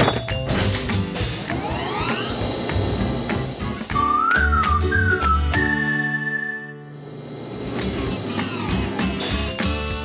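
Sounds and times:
background music: 0.0 - 10.0
electric train motor whine: 1.5 - 9.5.

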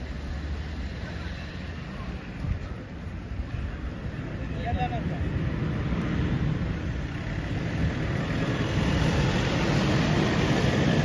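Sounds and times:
motor vehicle low rumble: 0.0 - 11.0.

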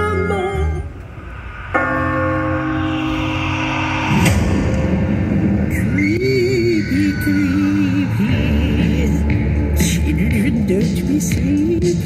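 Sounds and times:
rough low sound: 0.4 - 10.1
bell-like chord ringing: 1.3 - 8.6.

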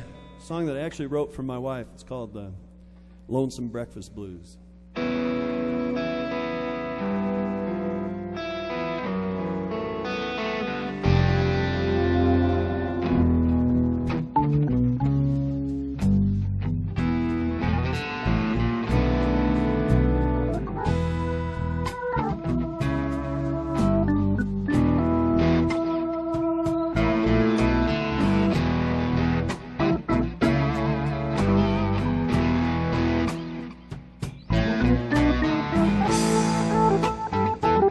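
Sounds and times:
electric guitar: 4.9 - 37.9
bass and drums: 11.0 - 37.9.

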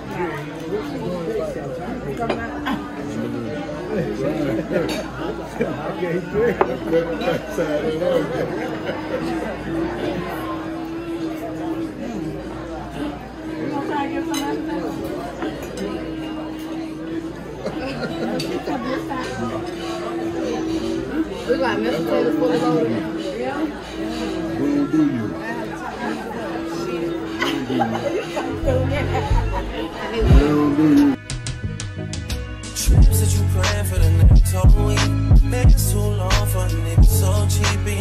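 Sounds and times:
people talking at once: 0.0 - 31.3
glasses and dishes clinking: 2.1 - 3.2, 4.5 - 5.5, 14.1 - 29.4.

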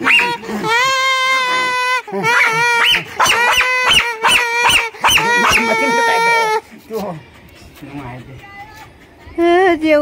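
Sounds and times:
dog yelping and whining: 0.0 - 6.8.

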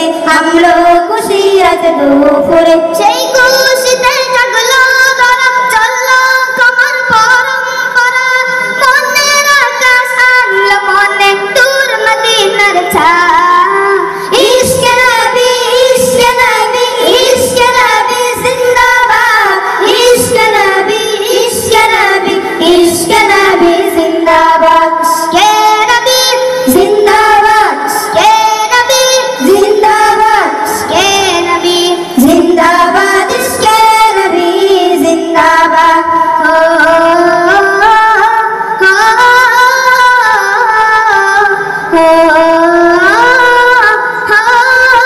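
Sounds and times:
boys singing in unison: 0.0 - 45.0.

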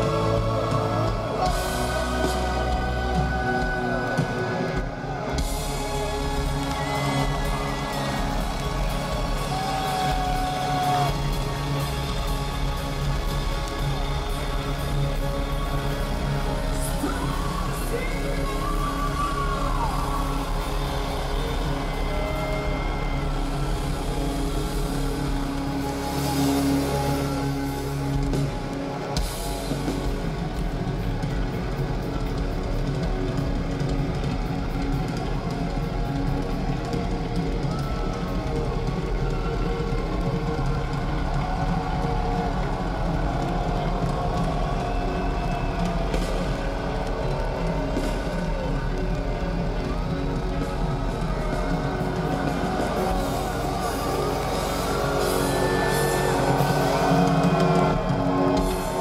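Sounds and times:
heavy metal band playing: 0.0 - 59.0.

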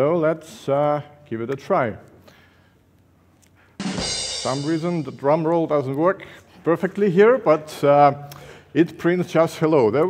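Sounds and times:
drum roll with snare and cymbal: 3.8 - 5.5.

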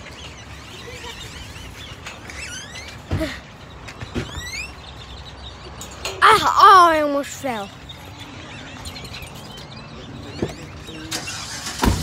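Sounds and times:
car engine rumbling: 3.7 - 12.0.

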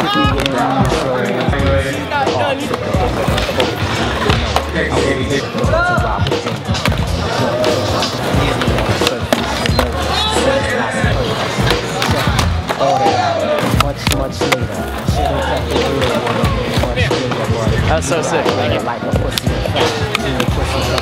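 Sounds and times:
skateboards rolling on concrete: 0.0 - 21.0
sharp skateboard clacks: 5.5 - 10.0, 11.4 - 17.5, 19.2 - 21.0.

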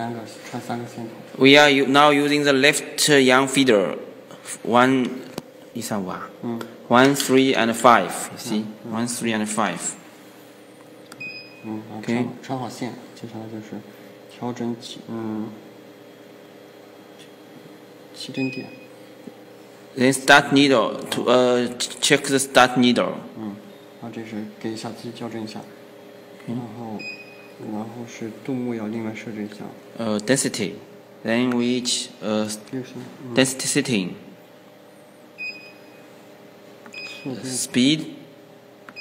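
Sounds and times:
man talking: 0.0 - 10.0, 11.6 - 15.6, 20.0 - 25.8, 26.4 - 34.2, 37.2 - 38.3.

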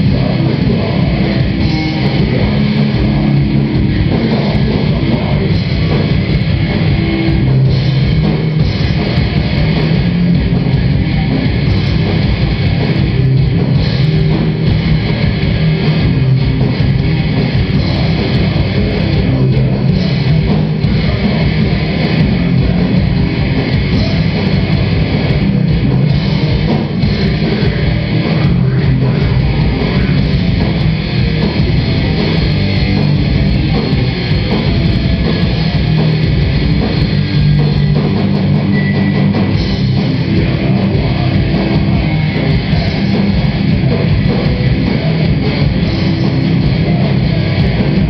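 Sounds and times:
death metal band playing: 0.0 - 48.0.

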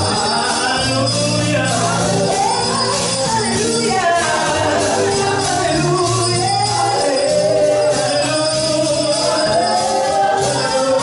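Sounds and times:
drum kit with cymbals: 0.0 - 11.0
piano: 0.0 - 11.0
singing voices: 0.0 - 11.0.

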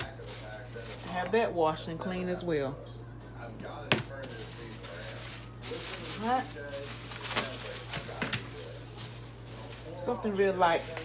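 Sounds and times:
plastic glove crinkling: 0.0 - 2.4, 4.1 - 11.0.

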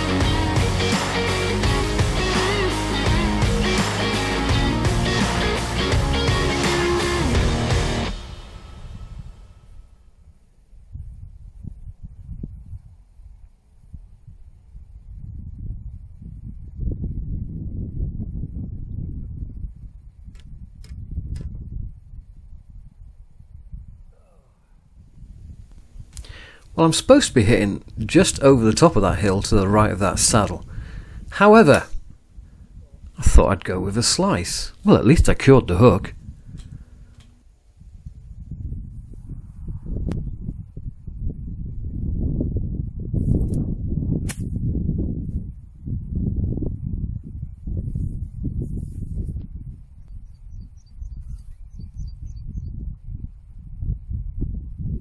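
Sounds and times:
wind buffeting microphone: 7.4 - 55.0.

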